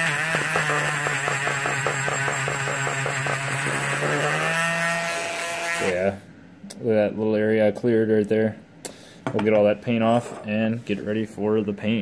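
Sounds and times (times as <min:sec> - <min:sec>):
rotary tool motor whine: 0:00.0 - 0:05.9.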